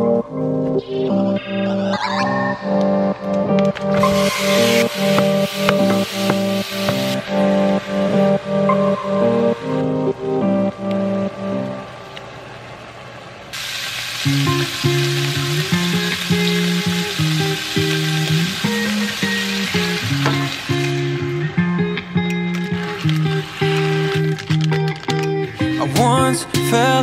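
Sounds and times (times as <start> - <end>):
slow background music: 0.0 - 12.6, 14.3 - 27.0
meat sizzling in a frying pan: 4.2 - 7.2, 13.6 - 21.3, 22.6 - 24.7.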